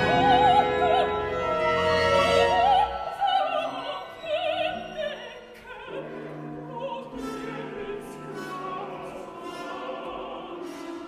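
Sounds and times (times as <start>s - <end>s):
opera orchestra with singing: 0.0s - 11.0s.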